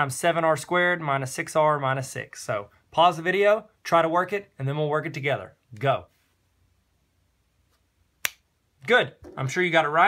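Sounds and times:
sharp snap: 8.2s - 8.5s.

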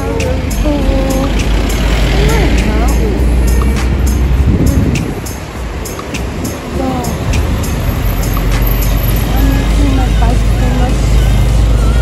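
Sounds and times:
bus passing by: 0.0s - 12.0s
music with ticking beat: 0.0s - 12.0s.

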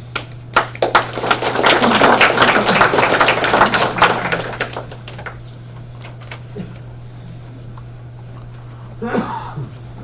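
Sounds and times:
audience applauding: 0.1s - 5.4s.

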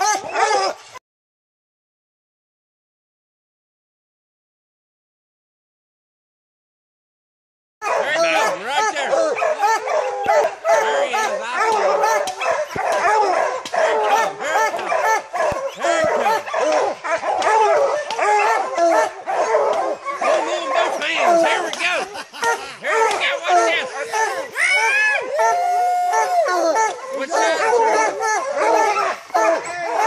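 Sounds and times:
pack of hounds baying: 0.0s - 0.8s, 7.8s - 30.0s.

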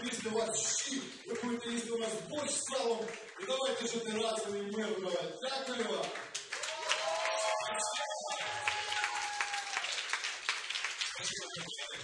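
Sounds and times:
audience applauding: 5.8s - 12.0s.

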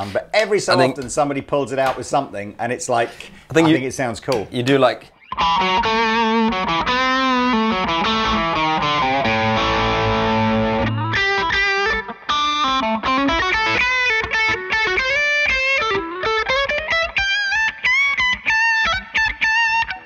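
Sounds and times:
electric guitar through amp: 5.2s - 20.0s.

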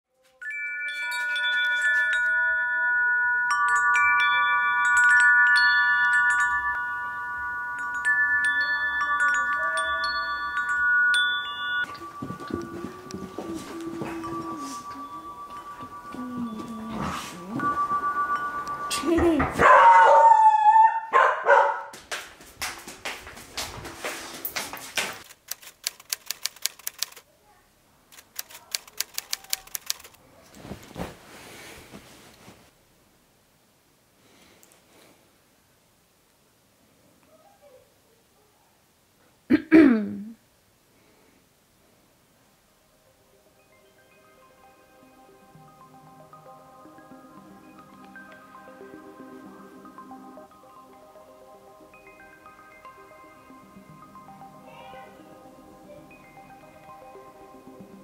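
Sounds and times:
metal wind chime ringing: 0.4s - 19.6s
rapid sharp clicks: 25.2s - 27.2s, 28.1s - 30.2s.

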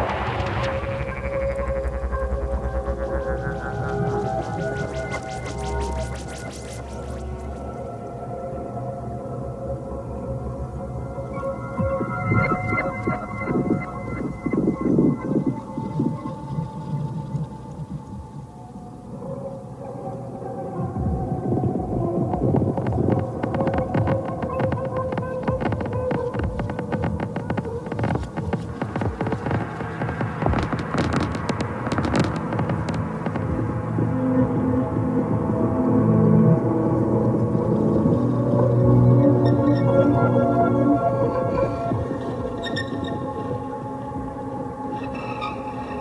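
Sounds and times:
crackling clicking texture: 0.0s - 8.2s, 11.3s - 18.5s, 21.0s - 34.6s
droning electronic tones: 0.0s - 18.6s, 20.6s - 46.0s.

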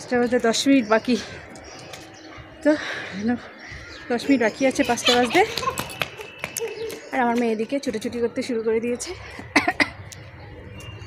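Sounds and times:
woman coughing: 9.5s - 10.0s.

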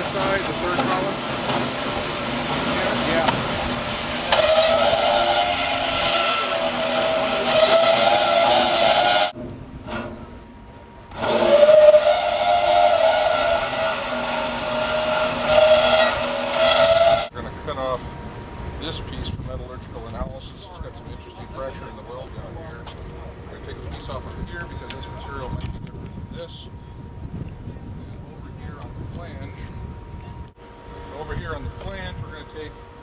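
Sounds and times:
band saw cutting steel: 0.0s - 10.4s, 11.1s - 17.3s.

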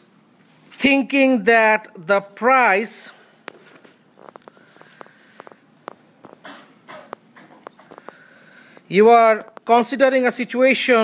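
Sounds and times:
breathy rustling noise: 3.2s - 6.5s, 7.6s - 8.9s
faint clicks and taps: 3.4s - 9.7s.

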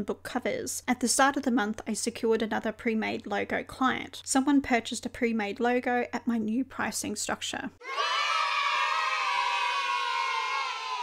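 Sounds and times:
children cheering together: 7.8s - 11.0s.

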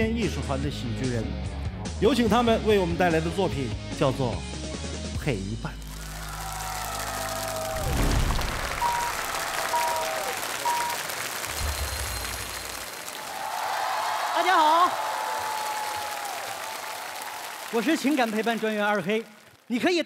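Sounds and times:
stage transition music: 5.8s - 13.2s
audience applauding: 5.8s - 19.9s
brief high tones: 8.7s - 13.0s.

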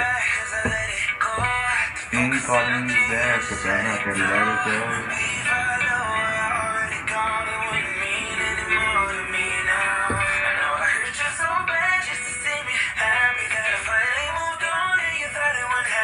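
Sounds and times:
man singing: 0.0s - 16.0s
r and b song: 0.0s - 16.0s.

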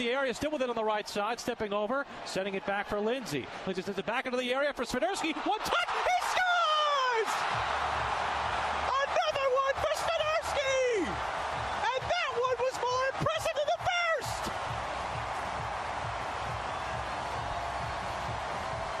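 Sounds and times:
stadium crowd noise: 0.0s - 19.0s.

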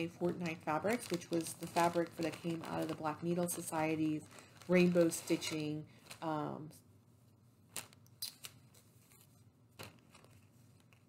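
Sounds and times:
fabric clicks and rustles: 0.0s - 6.5s, 7.7s - 11.0s.

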